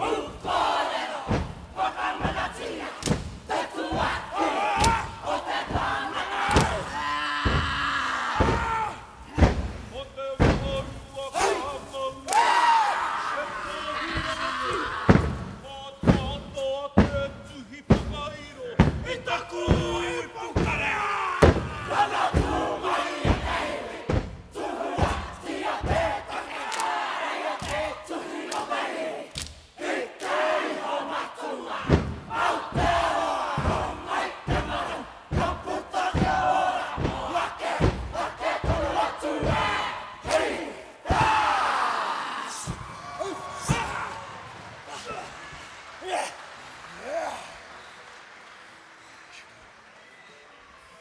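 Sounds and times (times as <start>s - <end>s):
many voices shouting a chant: 0.0s - 18.1s, 18.7s - 46.4s
stamping and slapping thumps: 2.2s - 5.1s, 5.7s - 7.8s, 8.4s - 8.7s, 9.3s - 9.8s, 10.4s - 10.9s, 15.1s - 16.4s, 18.8s - 24.4s, 31.9s - 40.4s.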